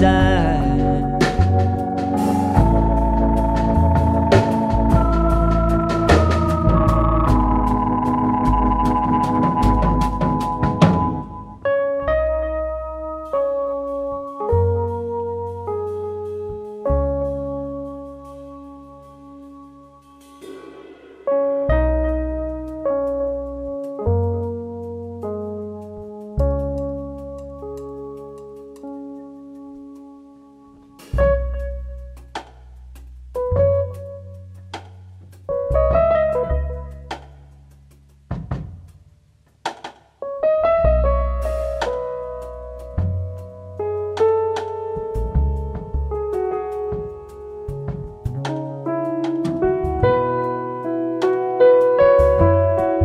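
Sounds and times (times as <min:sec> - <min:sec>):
drum and cymbal hits: 0:00.0 - 0:11.5, 0:20.2 - 0:22.3, 0:37.1 - 0:40.2
keyboard chord with deep bass: 0:00.0 - 0:20.4, 0:35.5 - 0:37.3, 0:40.3 - 0:53.0
soft brushed cymbal: 0:17.7 - 0:24.0, 0:41.3 - 0:46.1.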